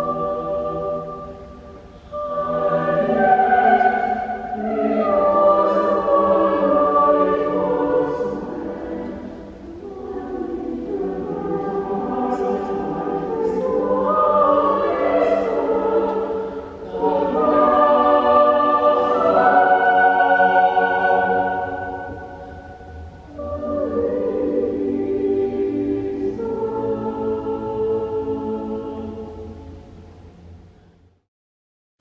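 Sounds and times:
choir singing slowly: 0.0 - 31.0.

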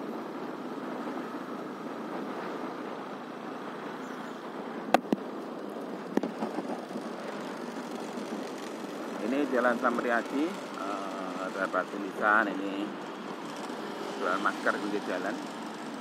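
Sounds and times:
vehicle engine and road noise: 0.0 - 16.0.

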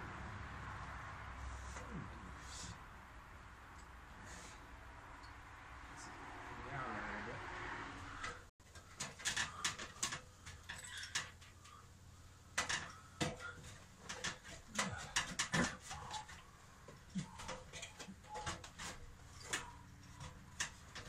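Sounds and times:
metallic clinks on ladder: 8.7 - 11.8, 12.5 - 21.0.

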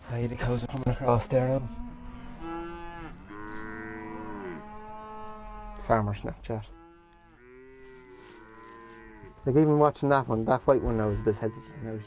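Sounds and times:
cows mooing: 1.1 - 12.0.

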